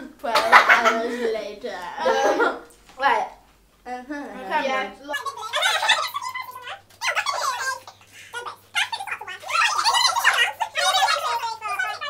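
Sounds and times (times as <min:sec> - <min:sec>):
girls giggling and squealing: 0:05.1 - 0:12.0.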